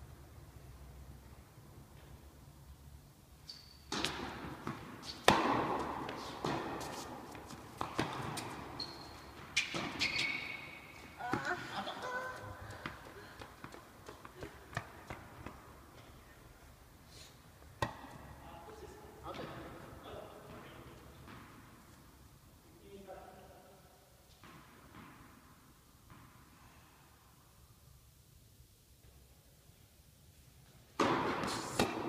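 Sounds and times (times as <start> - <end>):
shoe squeaks: 3.4 - 4.0, 8.4 - 11.6
tennis ball hits echoing: 3.9 - 8.7, 17.8 - 18.2, 31.0 - 32.0
ball bouncing on hard court: 3.9 - 15.7, 17.8 - 18.3, 20.4 - 21.8, 24.3 - 26.4, 31.0 - 32.0.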